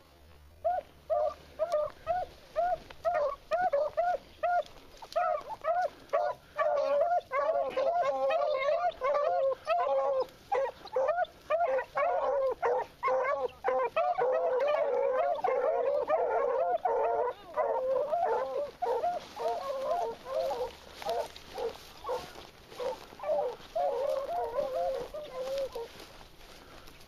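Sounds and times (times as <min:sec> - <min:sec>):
beagles baying: 0:00.6 - 0:27.0.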